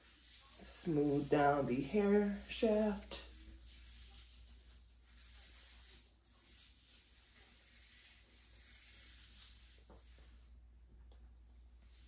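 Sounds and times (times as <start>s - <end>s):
soft rustling of hair: 0.0s - 12.0s.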